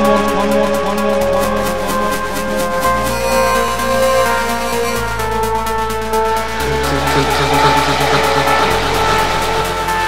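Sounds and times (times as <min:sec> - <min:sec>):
deep bass note: 0:00.0 - 0:10.0
held synth chord: 0:00.0 - 0:10.0
hi-hat ticks: 0:00.0 - 0:10.0.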